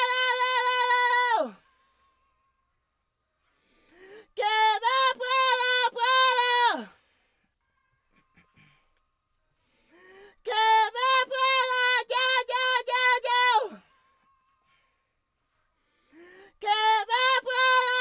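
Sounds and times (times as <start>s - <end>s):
high tenor voice singing: 0.0s - 1.6s, 4.4s - 6.9s, 10.4s - 13.8s, 16.6s - 18.0s.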